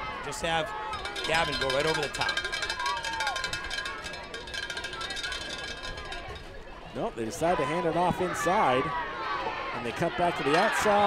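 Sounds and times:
distant shouting voices: 0.0s - 6.4s, 7.4s - 11.0s.

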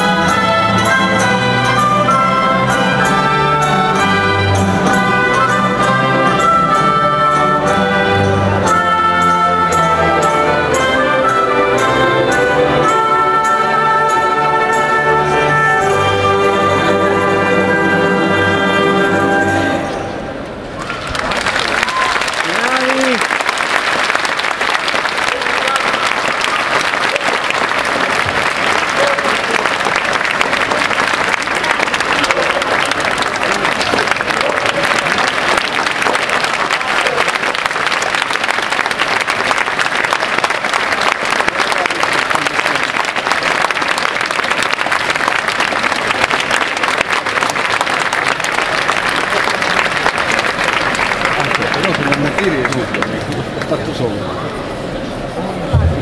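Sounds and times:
orchestra playing: 0.0s - 20.8s, 22.5s - 53.6s
audience applauding: 20.8s - 54.2s
voices in crowd: 25.0s - 38.0s, 47.1s - 56.0s.

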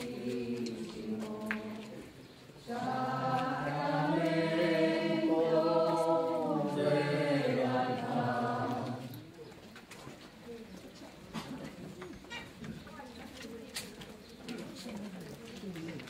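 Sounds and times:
group singing a slow hymn: 0.0s - 9.3s.

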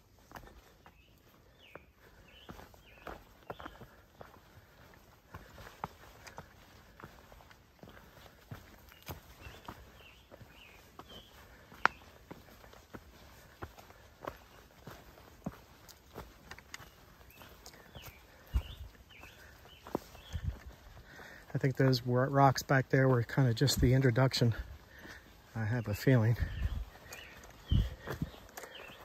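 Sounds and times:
footsteps on rocky trail: 0.0s - 29.0s.

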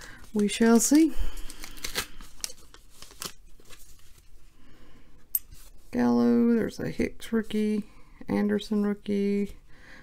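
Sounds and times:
wrapper tearing and crinkling: 1.4s - 4.2s.

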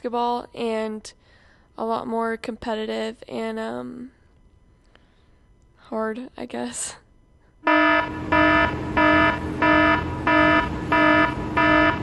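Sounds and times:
electronic buzzer alarm pulsing: 7.6s - 12.0s.

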